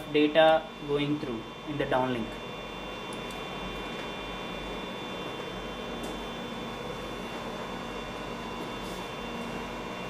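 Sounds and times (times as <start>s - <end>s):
computer equipment whirring: 0.0s - 10.0s.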